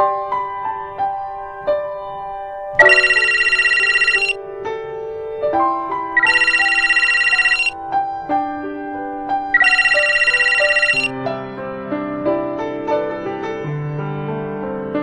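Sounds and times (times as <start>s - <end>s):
phone ringing trill: 2.8s - 4.4s, 6.2s - 7.8s, 9.6s - 11.1s.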